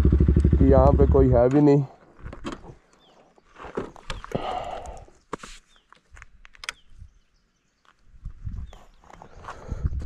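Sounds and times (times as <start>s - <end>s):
rustles: 1.7s - 7.1s.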